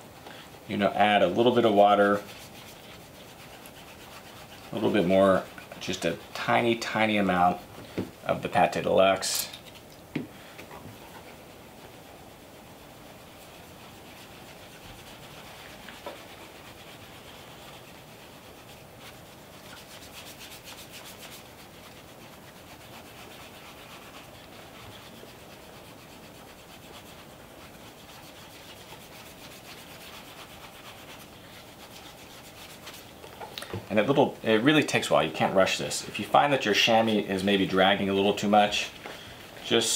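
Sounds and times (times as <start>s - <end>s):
cloth rubbing on leather shoe: 0.0s - 9.4s, 10.8s - 39.9s.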